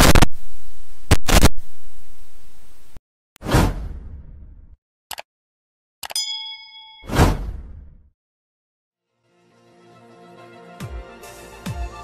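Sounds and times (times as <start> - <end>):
bright ding: 6.2 - 7.3.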